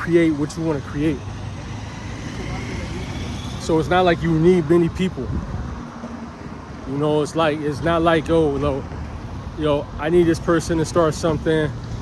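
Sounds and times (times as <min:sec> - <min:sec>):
low rumble of road traffic: 0:00.0 - 0:12.0
wind buffeting microphone: 0:03.3 - 0:09.1.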